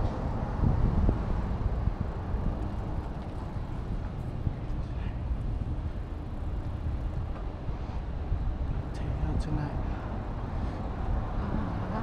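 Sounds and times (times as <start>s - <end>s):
road traffic: 0.0s - 12.0s
wind buffeting microphone: 0.0s - 12.0s.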